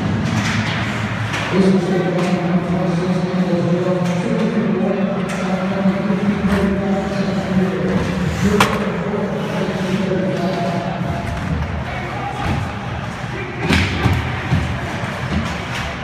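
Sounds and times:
voices in arena: 0.0 - 16.0
puck crack: 8.4 - 9.2
stick and board knocks: 8.6 - 8.9.

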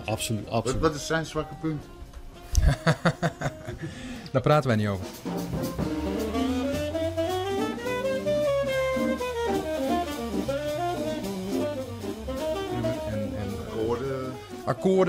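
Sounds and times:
drums keeping time: 0.0 - 15.0
saxophone melody: 5.5 - 15.0.

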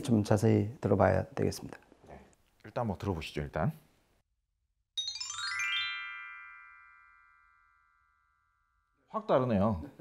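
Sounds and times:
chime-like ringing tone: 5.0 - 9.2.

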